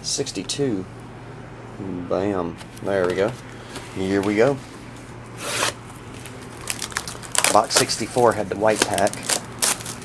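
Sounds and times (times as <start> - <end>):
scissors cutting plastic wrap: 5.4 - 10.0
plastic crinkling: 6.0 - 10.0.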